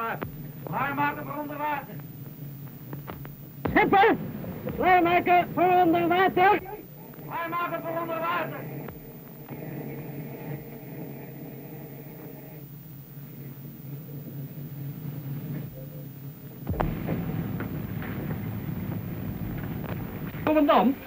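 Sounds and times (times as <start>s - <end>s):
low machinery hum: 0.0s - 15.9s, 16.5s - 21.0s
rough rumble with rushing noise: 3.6s - 7.6s, 16.7s - 21.0s.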